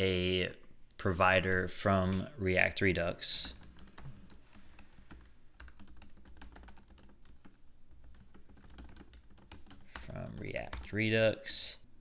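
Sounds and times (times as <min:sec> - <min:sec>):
computer keyboard typing: 0:03.3 - 0:11.1.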